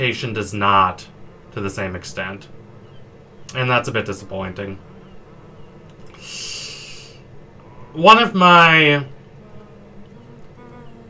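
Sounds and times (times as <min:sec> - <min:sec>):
man breathing in: 0:06.1 - 0:07.9.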